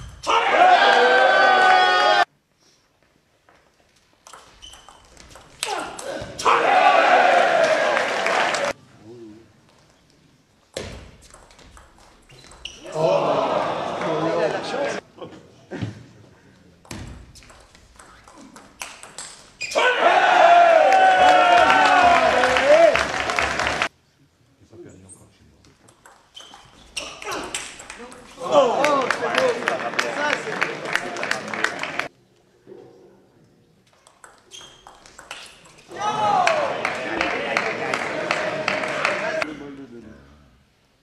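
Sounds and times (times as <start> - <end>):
people shouting: 0.2 - 2.3, 5.6 - 8.7, 12.8 - 15.0, 19.7 - 23.0, 28.4 - 29.4, 35.9 - 37.8
voices in a hall: 12.7 - 16.9, 26.8 - 33.9, 35.3 - 40.8
table tennis ball clicking: 34.0 - 35.8.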